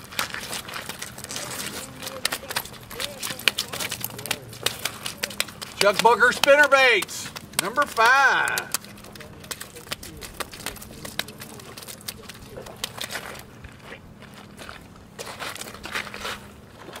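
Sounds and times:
fishing gear being handled: 0.0s - 13.6s
gravel crunching underfoot: 0.0s - 17.0s.

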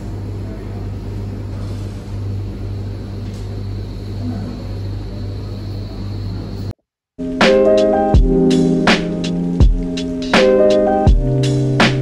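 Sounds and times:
tumble dryers humming: 7.3s - 12.0s.

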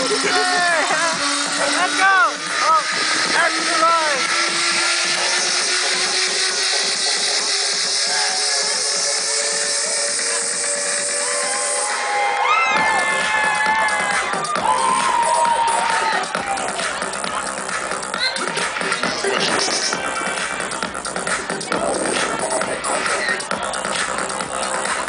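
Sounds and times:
crowd whooping and shouting: 0.0s - 20.2s
electronic dance music: 0.0s - 25.0s.

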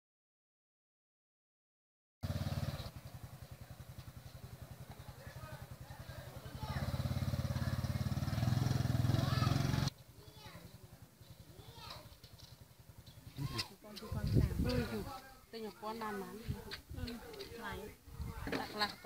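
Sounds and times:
small motorcycle engine idling: 2.2s - 15.2s
faint voices: 4.5s - 8.2s.

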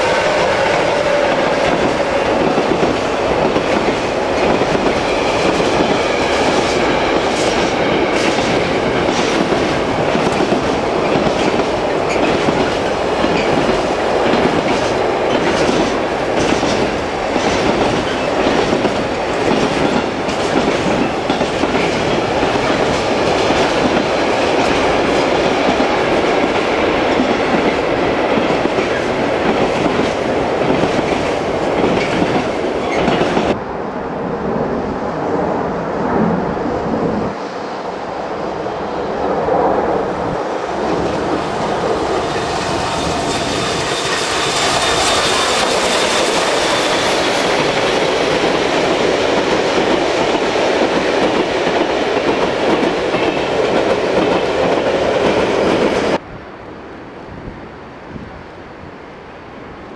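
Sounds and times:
freight train rumbling past: 0.0s - 59.9s.

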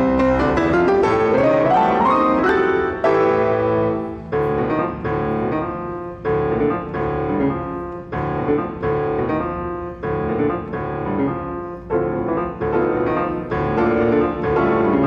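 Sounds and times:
grand piano playing fast: 0.0s - 15.0s.

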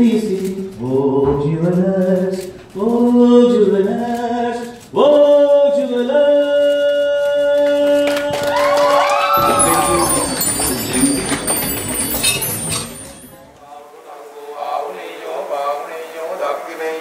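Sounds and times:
audience applause and cheering: 7.6s - 12.0s.

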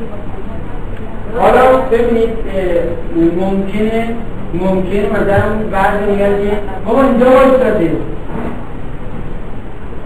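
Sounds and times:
background hiss and rumble: 0.0s - 10.0s.

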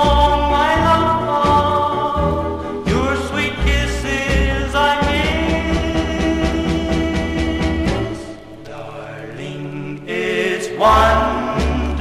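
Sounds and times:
vocal group holding harmony chord: 0.0s - 12.0s.

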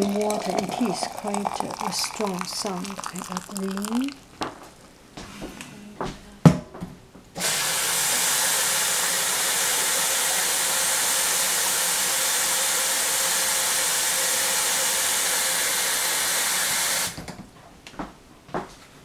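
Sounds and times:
boiling water hissing: 0.0s - 4.4s, 7.4s - 17.2s.

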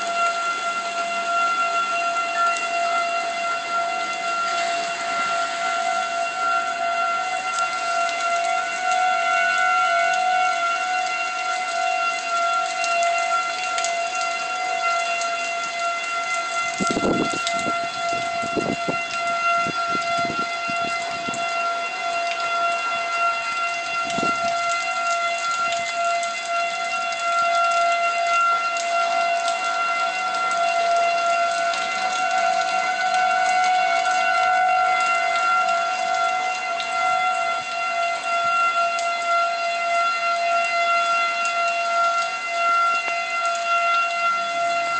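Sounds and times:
warning siren two-tone wail: 0.0s - 44.9s.

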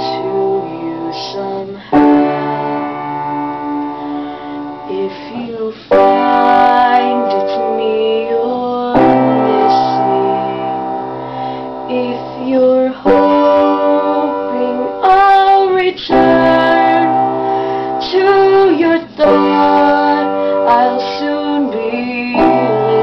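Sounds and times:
piano playing slow chords: 0.0s - 23.0s
woman singing long notes: 0.0s - 23.0s.

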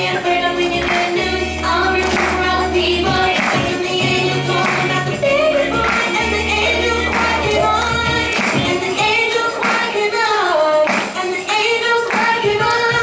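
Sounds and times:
girls singing together: 0.0s - 13.0s
instrumental backing with beat: 0.0s - 13.0s.

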